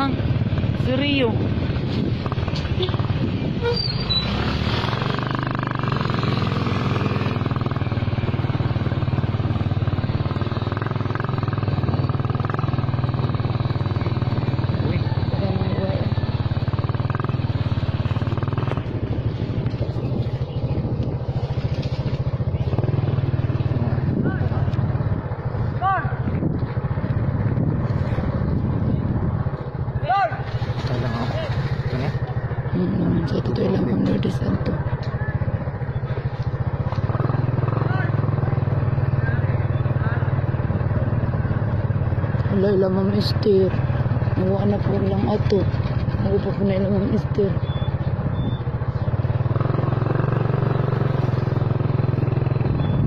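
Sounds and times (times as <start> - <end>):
road and wind noise: 0.0 - 53.0
small motorcycle engine running: 0.0 - 53.0.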